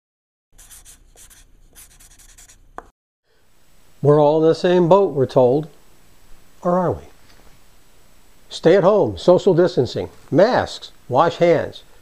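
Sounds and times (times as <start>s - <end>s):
pen scratching on paper: 0.6s - 2.6s.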